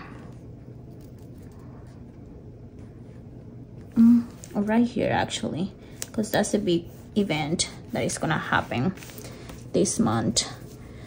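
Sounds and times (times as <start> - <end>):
low room hum: 0.0 - 11.0
sticker rustling on paper: 5.9 - 10.8.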